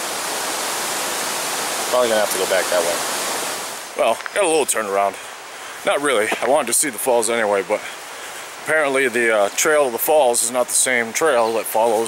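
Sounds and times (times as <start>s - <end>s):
mountain brook rushing: 0.0s - 12.0s.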